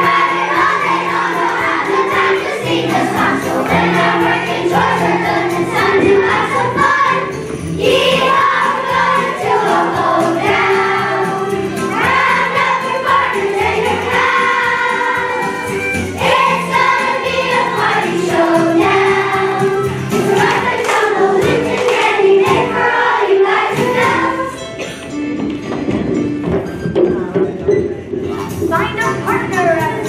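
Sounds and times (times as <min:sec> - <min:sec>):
children's choir singing: 0:00.0 - 0:24.9
instrumental accompaniment: 0:00.0 - 0:30.0.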